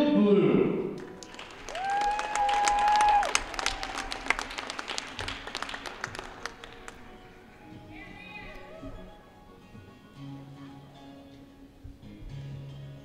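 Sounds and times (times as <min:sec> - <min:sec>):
audience clapping: 0:01.0 - 0:07.4
long high cheer: 0:01.4 - 0:06.2.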